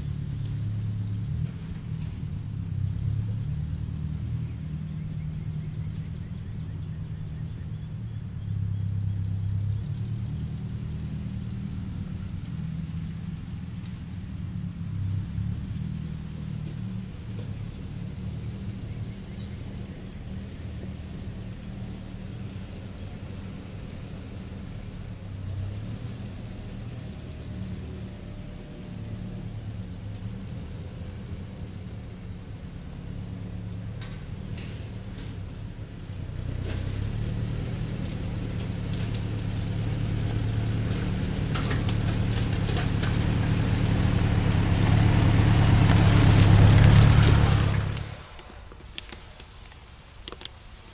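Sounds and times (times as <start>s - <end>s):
distant tractor engine rumble: 0.0s - 50.9s.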